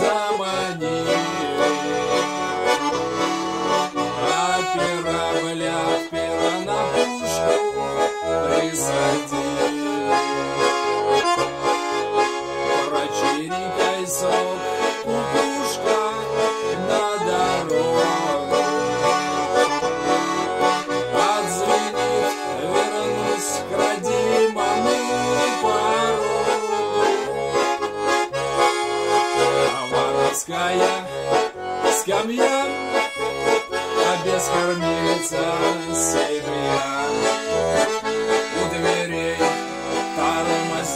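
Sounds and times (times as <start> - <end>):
button accordion playing: 0.0 - 40.9.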